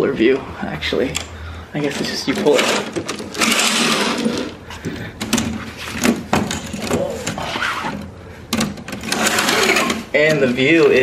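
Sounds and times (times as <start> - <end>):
curtain runners sliding and rattling: 1.9 - 4.6, 8.8 - 11.0.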